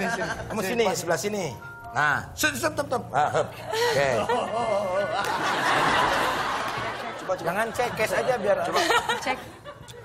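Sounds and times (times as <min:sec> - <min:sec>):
people laughing: 0:00.0 - 0:00.8, 0:03.4 - 0:10.0.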